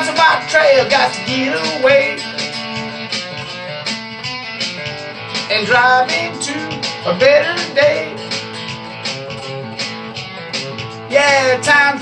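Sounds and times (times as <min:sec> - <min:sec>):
electric guitar strumming: 0:02.8 - 0:12.0.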